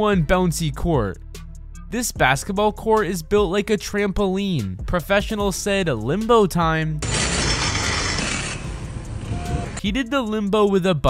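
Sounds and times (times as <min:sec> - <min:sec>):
bicycles clicking and rattling: 0:07.0 - 0:09.8
street noise: 0:07.0 - 0:09.8.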